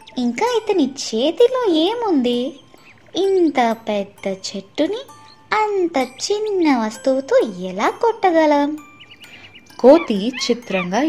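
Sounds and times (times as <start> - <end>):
faint high tinkling notes: 0.0 - 11.0.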